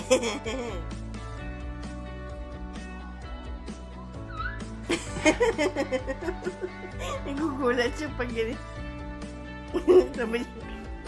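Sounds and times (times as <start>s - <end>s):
background music: 0.0s - 11.0s
baby squealing: 4.3s - 4.7s.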